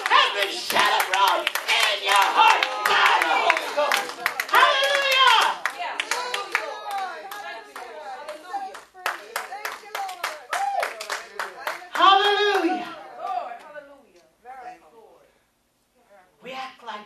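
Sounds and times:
hand clapping: 0.0s - 12.8s.

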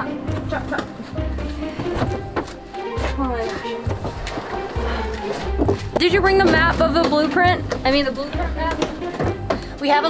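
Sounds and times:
background music with bass line: 0.0s - 9.9s.

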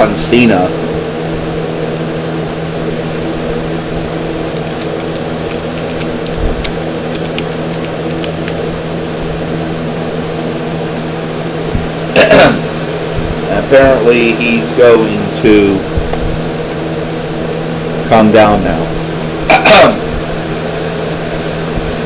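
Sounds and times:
low mechanical hum: 0.0s - 22.0s.

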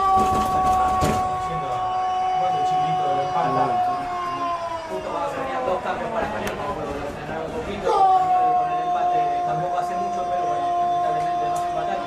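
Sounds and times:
quiet voices: 0.0s - 12.0s.

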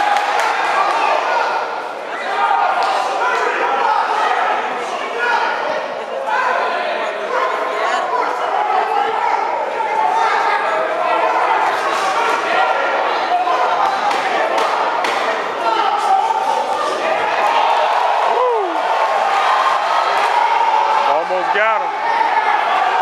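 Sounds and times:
crowd talking and calling out: 0.0s - 23.0s.

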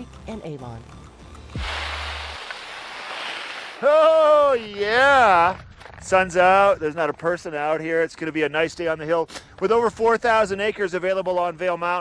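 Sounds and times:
rushing hiss of open air: 1.6s - 4.6s.

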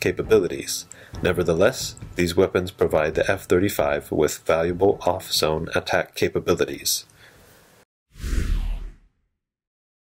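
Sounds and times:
whoosh with low rumble: 8.2s - 9.2s.

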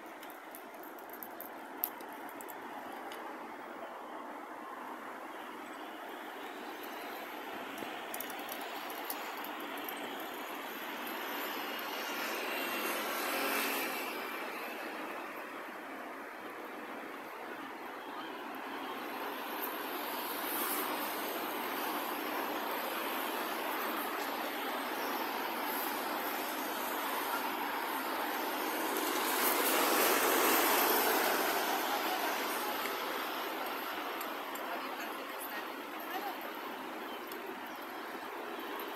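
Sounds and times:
road traffic noise: 0.0s - 38.9s
vehicles passing: 0.0s - 38.9s.

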